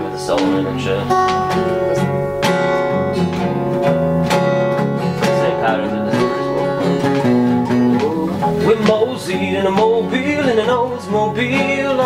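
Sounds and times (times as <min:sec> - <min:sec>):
person singing: 0:00.0 - 0:02.2, 0:05.2 - 0:12.0
guitar strumming: 0:00.0 - 0:12.0.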